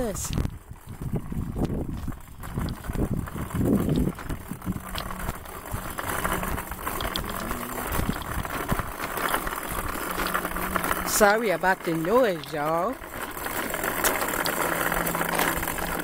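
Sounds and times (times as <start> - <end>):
cart wheels rattling over asphalt: 0.0 - 16.0.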